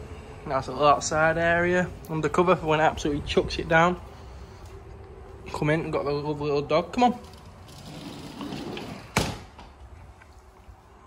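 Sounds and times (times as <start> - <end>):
glass door rolling on track: 7.2 - 9.6
door banging shut: 8.8 - 9.8.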